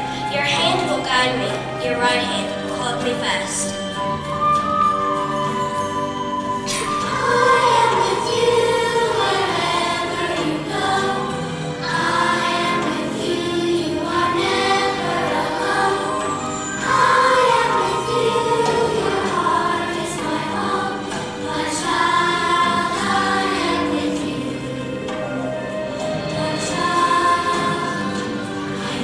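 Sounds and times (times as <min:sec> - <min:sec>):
children's choir singing: 0:00.0 - 0:04.7, 0:06.6 - 0:29.0
musical accompaniment: 0:00.0 - 0:29.0.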